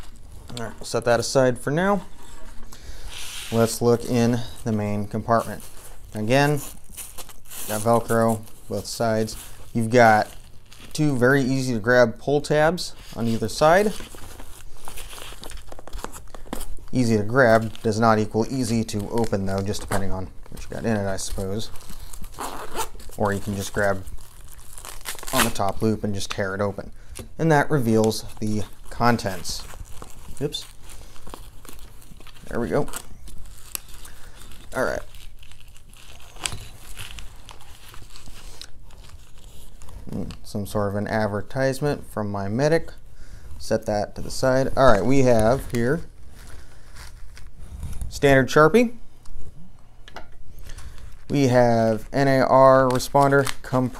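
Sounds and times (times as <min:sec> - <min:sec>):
nylon pouch rustling and clicking: 0:13.2 - 0:26.4, 0:27.1 - 0:40.5.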